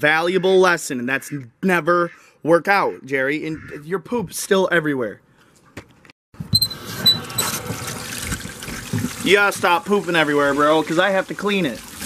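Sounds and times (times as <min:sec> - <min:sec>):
water splashing and trickling: 0:06.8 - 0:12.0.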